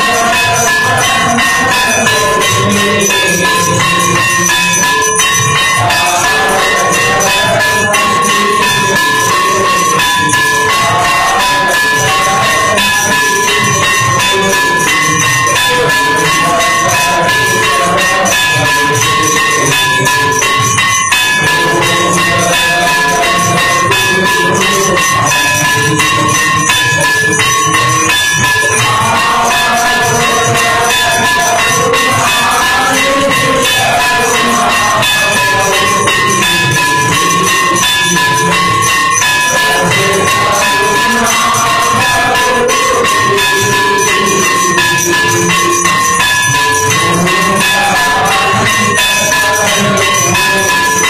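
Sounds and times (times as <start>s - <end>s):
bells and percussion fast beat: 0.0s - 51.0s
ringing bell tone: 0.0s - 51.0s.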